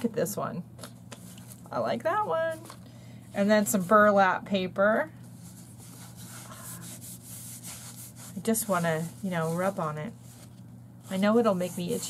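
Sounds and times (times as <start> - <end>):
fingers rubbing textured paper: 5.4 - 10.5, 11.1 - 12.0.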